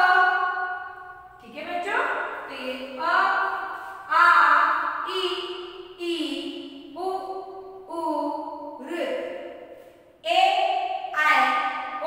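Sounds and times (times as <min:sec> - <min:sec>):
woman chanting in sing-song: 0:01.4 - 0:09.3, 0:11.2 - 0:11.6.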